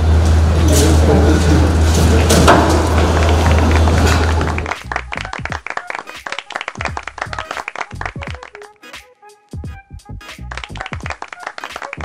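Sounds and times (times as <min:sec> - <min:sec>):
low hum: 0:00.0 - 0:05.5
live court noise: 0:00.0 - 0:09.0
percussive background music: 0:02.4 - 0:12.0.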